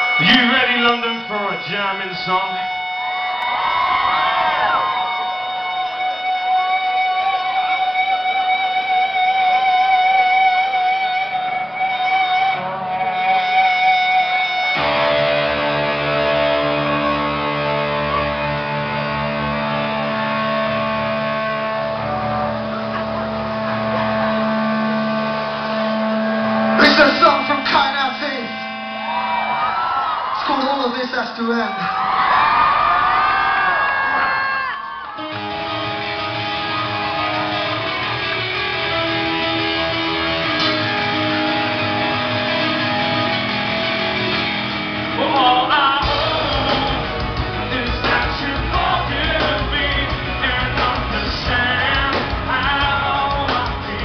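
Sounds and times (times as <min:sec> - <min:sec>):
electric guitar sustained notes: 0:00.0 - 0:54.0
rock band playing loud: 0:00.0 - 0:54.0
crowd shouting: 0:03.3 - 0:05.7, 0:28.8 - 0:43.2.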